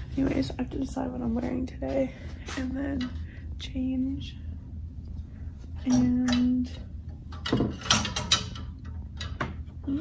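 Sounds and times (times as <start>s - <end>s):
hangers clacking on metal rail: 5.8s - 9.7s.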